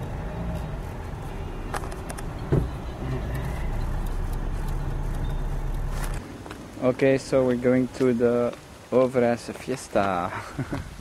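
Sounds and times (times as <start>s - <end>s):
car engine running: 0.0s - 6.2s.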